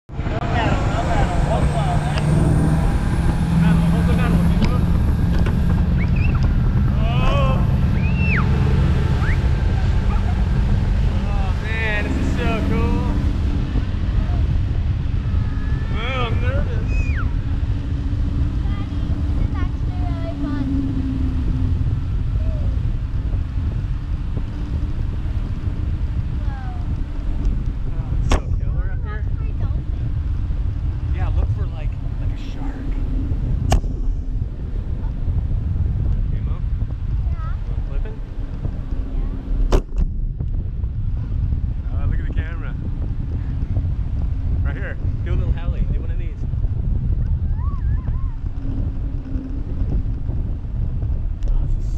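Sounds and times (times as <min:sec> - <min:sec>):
wind rumble: 0:00.0 - 0:51.9
boat engine: 0:00.1 - 0:51.9
wavering voices: 0:06.0 - 0:13.2.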